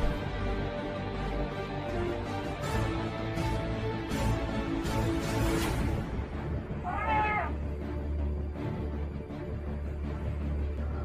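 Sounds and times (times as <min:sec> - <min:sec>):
cat-like meow: 0:06.8 - 0:07.6.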